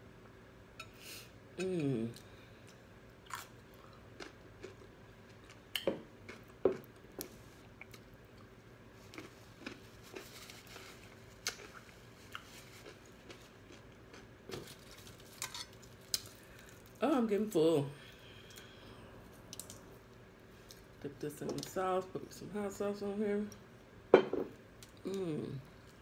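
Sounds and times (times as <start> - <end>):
chewing crunchy food: 2.2 - 17.0.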